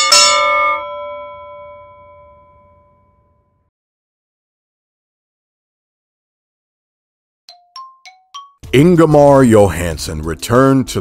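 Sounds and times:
boxing ring bell ringing: 0.0 - 3.5.

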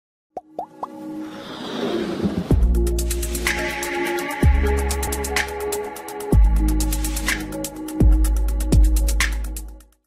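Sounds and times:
intro music: 2.2 - 9.8.

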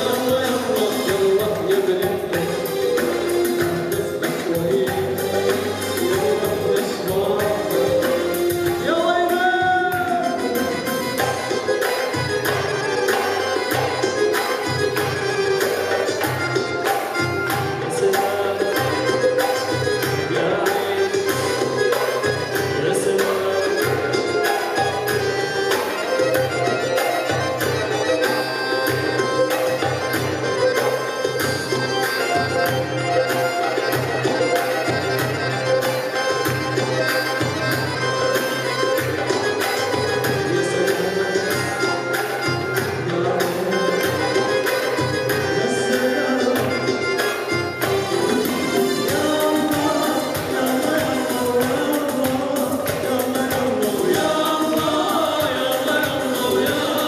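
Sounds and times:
man singing into microphone: 0.0 - 30.1, 39.5 - 57.0
keyboard melody: 0.0 - 57.0
percussive strikes: 0.0 - 57.0.

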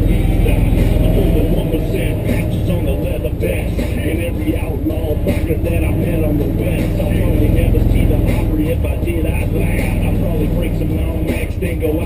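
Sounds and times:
off-road vehicle engine running: 0.0 - 12.0
song with vocals: 0.0 - 12.0.

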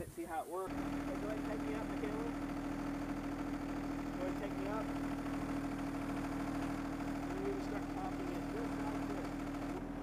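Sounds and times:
tractor diesel engine running: 0.7 - 10.0.

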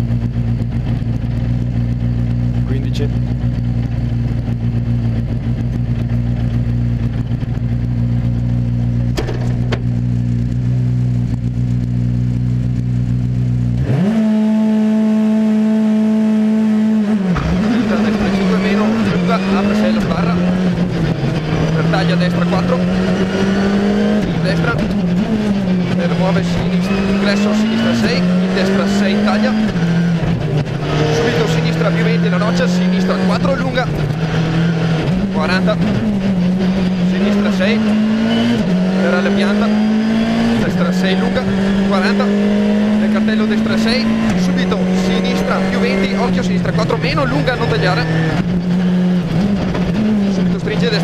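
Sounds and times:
rally car engine revving and accelerating: 0.0 - 51.0.

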